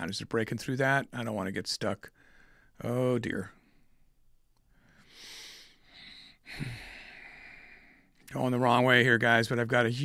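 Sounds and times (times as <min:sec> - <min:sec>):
man sighing heavily: 0:05.4 - 0:07.9.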